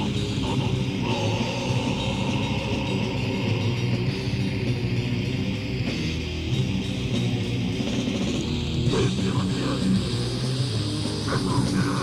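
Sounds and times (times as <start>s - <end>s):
metal music with distorted guitar: 0.0s - 12.0s.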